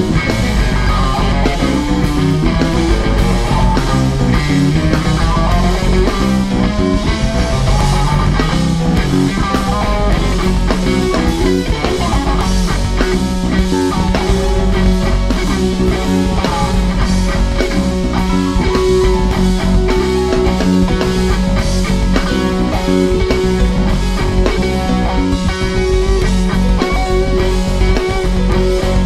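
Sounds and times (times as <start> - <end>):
bass guitar: 0.0 - 29.0
drum kit beat: 0.0 - 29.0
electric guitar lead: 0.0 - 29.0.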